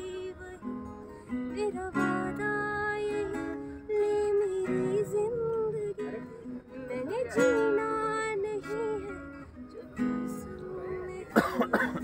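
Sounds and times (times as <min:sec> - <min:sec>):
acoustic guitar strummed: 0:00.0 - 0:12.0.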